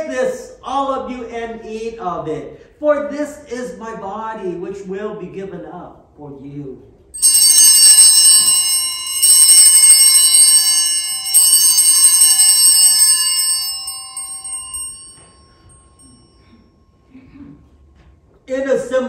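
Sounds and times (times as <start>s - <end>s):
altar bells jingling: 7.2s - 16.6s.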